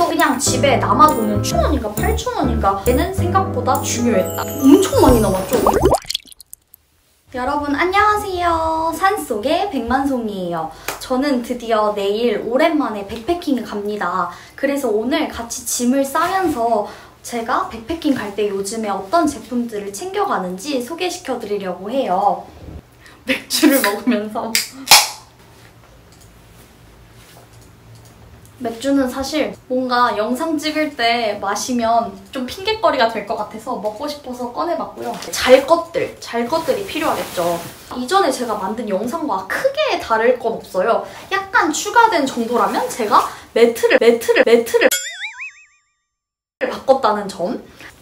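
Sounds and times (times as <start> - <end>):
woman speaking: 0.0 - 5.9, 7.4 - 22.4, 28.6 - 44.9
cartoon boing sound effect: 44.8 - 45.8.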